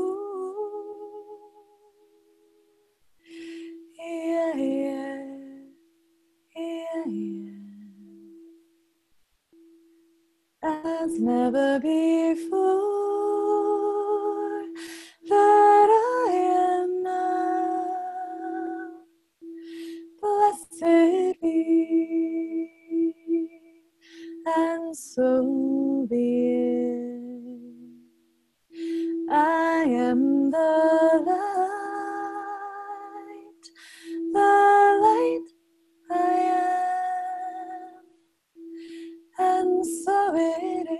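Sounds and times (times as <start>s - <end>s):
woman singing wordless phrases: 0.0s - 1.8s, 3.3s - 5.8s, 6.5s - 8.4s, 10.6s - 19.1s, 20.0s - 28.1s, 28.8s - 38.1s, 39.3s - 40.9s
crystal singing bowl tone: 0.0s - 8.9s, 9.5s - 40.9s.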